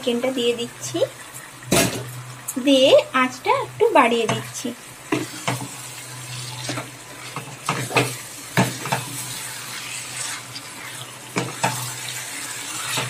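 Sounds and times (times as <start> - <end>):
food sizzling in a frying pan: 0.0 - 13.0
spatula scraping a pan: 5.1 - 13.0.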